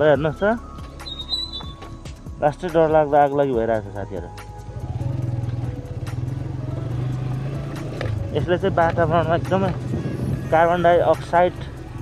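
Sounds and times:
vehicle engine humming: 0.3 - 12.0.

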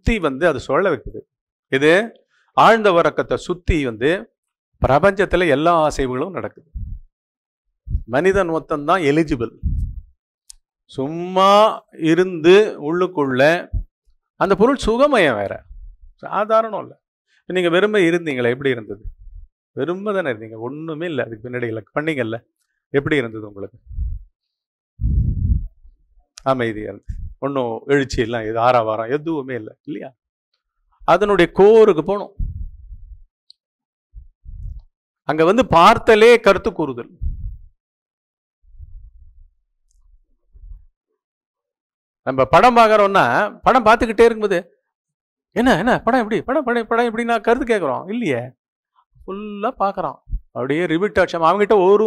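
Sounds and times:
man speaking into headset microphone: 1.8 - 6.6, 8.0 - 9.6, 10.9 - 13.8, 14.4 - 19.2, 19.8 - 22.4, 23.0 - 23.8, 26.4 - 30.1, 31.0 - 32.4, 35.3 - 37.2
low muffled sounds near microphone: 6.7 - 7.1, 7.9 - 8.5, 9.4 - 10.1, 18.9 - 19.5, 23.6 - 24.3, 25.0 - 27.5, 32.3 - 33.2, 34.2 - 34.8, 37.1 - 37.7, 38.7 - 39.5
man speaking: 8.0 - 9.6, 14.4 - 16.9, 26.4 - 30.1, 31.1 - 32.4.

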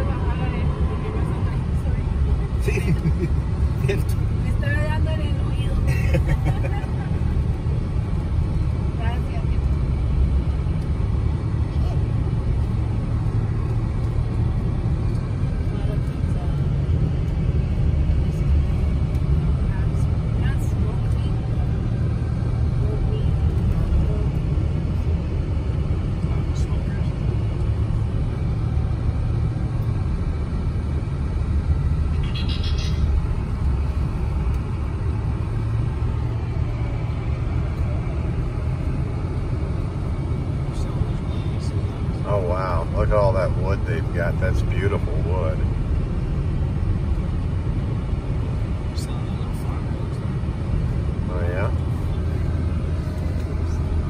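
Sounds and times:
car engine and tyres rumbling: 0.0 - 54.0
high-pitched chirp: 32.1 - 33.2.

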